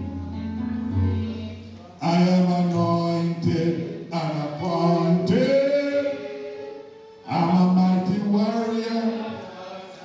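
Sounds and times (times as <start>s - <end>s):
man singing long held notes: 2.0s - 9.4s.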